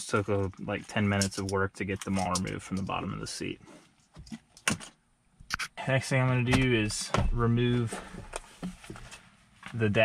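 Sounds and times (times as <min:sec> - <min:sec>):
person speaking: 0:00.0 - 0:03.7, 0:05.5 - 0:08.1, 0:09.8 - 0:10.0.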